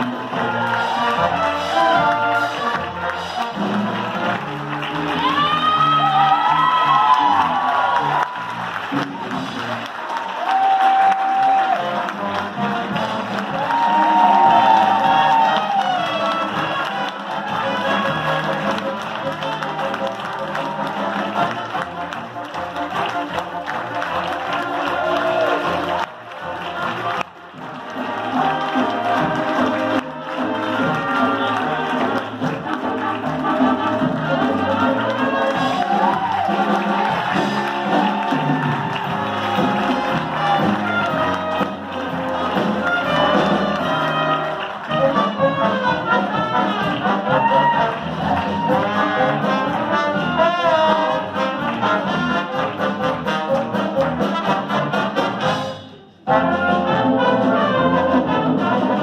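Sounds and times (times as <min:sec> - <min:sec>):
audience applauding and cheering: 0:00.0 - 0:59.0
crowd voices: 0:00.0 - 0:59.0
live band playing: 0:00.0 - 0:59.0.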